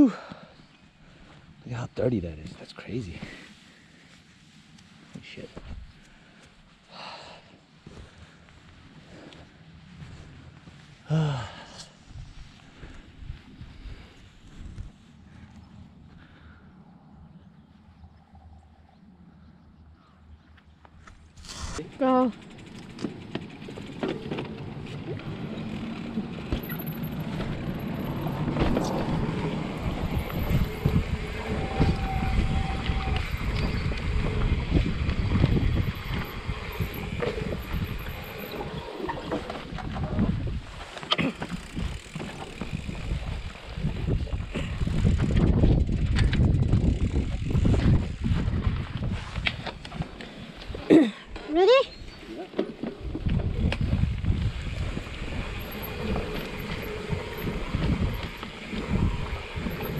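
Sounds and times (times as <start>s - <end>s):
wind buffeting microphone: 12.0s - 18.5s, 23.6s - 40.9s, 41.5s - 50.8s, 51.9s - 59.9s
bike tyres rolling: 20.0s - 59.9s
rising squeaks: 22.4s - 40.9s, 54.6s - 59.9s.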